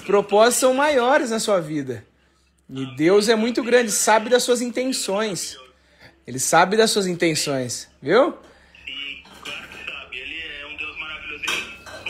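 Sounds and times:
muffled talk from phone speaker: 0:08.4 - 0:12.0.

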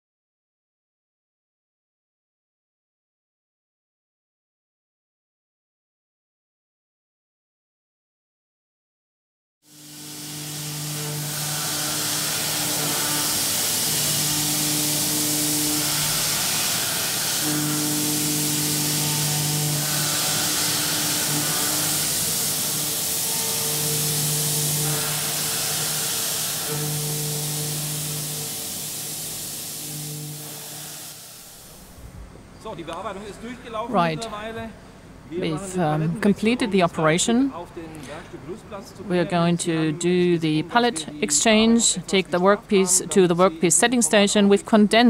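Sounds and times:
coolant hiss: 0:09.7 - 0:32.0
low humming spindle tone: 0:09.7 - 0:32.6.

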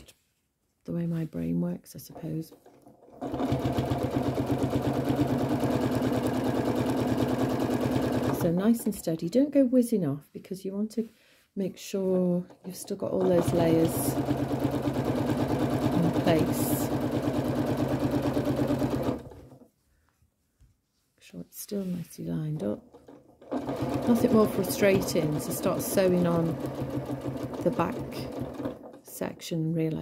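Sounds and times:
electric sewing machine stitching: 0:02.2 - 0:09.1, 0:12.5 - 0:19.6, 0:22.6 - 0:29.2.

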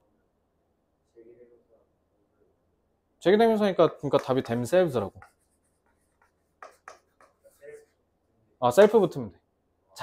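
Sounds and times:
chalk scratching on chalkboard: 0:04.0 - 0:08.1.

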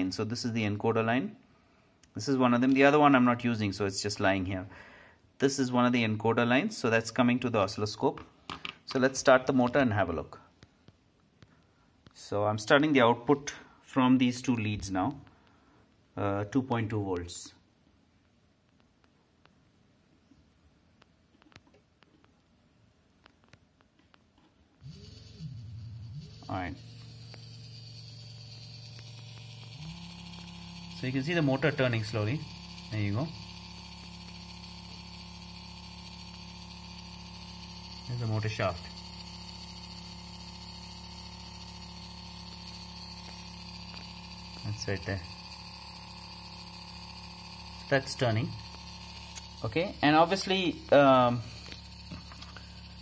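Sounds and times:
small gear motor humming and whining: 0:24.8 - 0:53.0.

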